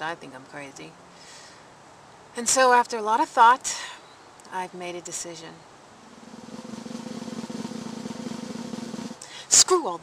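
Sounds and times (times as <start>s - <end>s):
snare drum roll: 6.2s - 9.2s.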